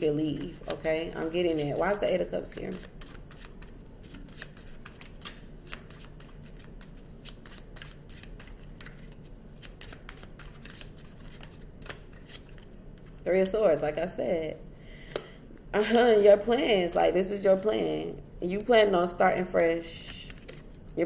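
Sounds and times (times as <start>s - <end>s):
cards being shuffled: 0.3s - 13.2s, 20.0s - 20.9s.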